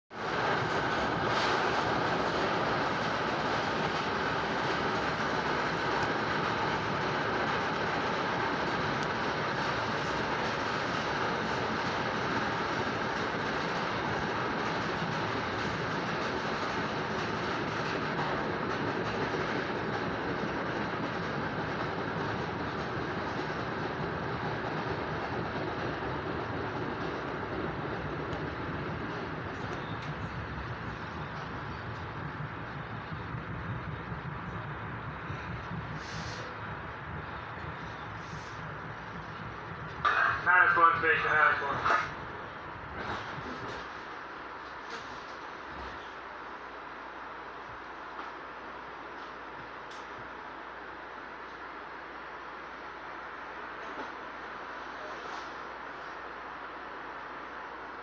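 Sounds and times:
train rumbling on track: 0.1s - 58.0s.

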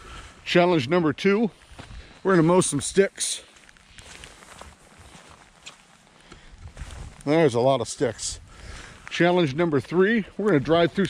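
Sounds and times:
footsteps on muddy grass: 0.0s - 11.0s.

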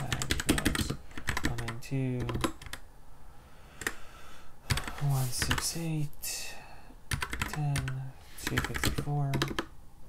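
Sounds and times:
computer keyboard keystrokes: 0.1s - 2.8s, 4.7s - 5.6s, 7.1s - 9.7s
person speaking a word: 4.9s - 6.6s, 7.5s - 9.5s.

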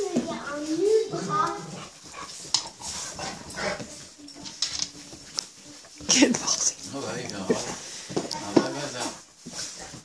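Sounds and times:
dogs scuffling on bedding: 0.0s - 10.0s.

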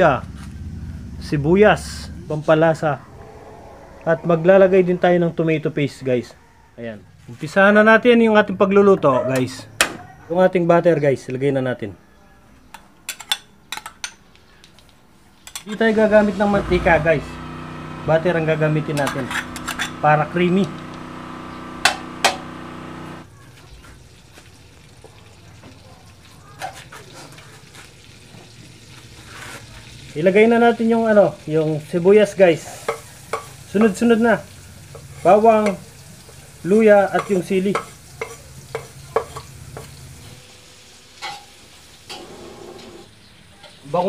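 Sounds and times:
metal spoon scraping wok: 15.4s - 16.8s, 18.8s - 20.3s, 37.2s - 40.3s
butter sizzling: 15.4s - 44.0s
steady hum: 16.5s - 23.2s
metal tapping on pan: 21.8s - 22.5s, 32.9s - 34.0s, 37.1s - 40.0s.

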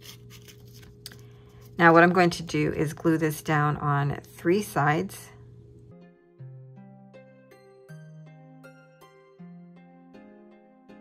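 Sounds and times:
faint steady hum: 0.0s - 6.5s
woman speaking: 1.8s - 5.4s.

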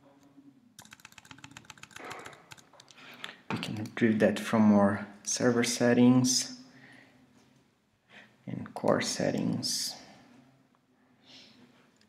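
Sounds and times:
faint keyboard keystrokes: 0.8s - 3.9s.

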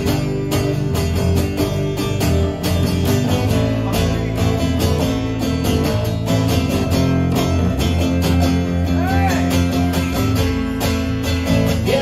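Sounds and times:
acoustic bass guitar: 0.0s - 12.0s
acoustic guitar strumming: 0.0s - 12.0s.

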